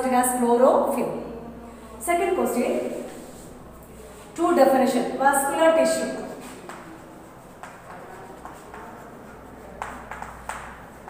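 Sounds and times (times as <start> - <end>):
chalk tapping and scraping on blackboard: 6.3 - 11.0.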